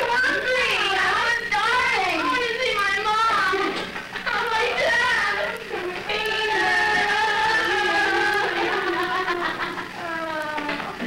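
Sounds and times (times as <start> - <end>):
teenage girls' voices: 0.0 - 10.8.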